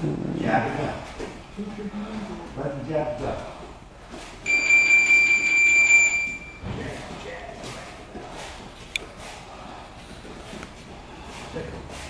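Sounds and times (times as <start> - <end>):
long high electronic beep: 4.5 - 6.6.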